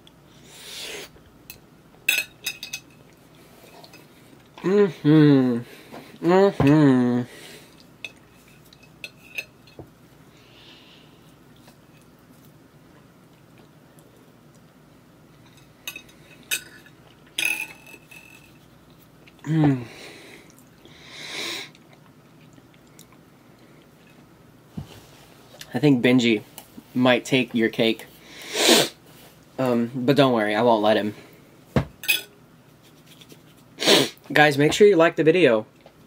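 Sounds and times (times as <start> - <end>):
cutlery scraping plate: 8.1 - 9.6.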